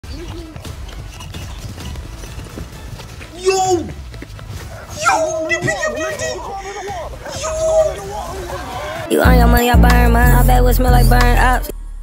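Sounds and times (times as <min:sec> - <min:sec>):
men's voices: 0:04.8 - 0:11.7.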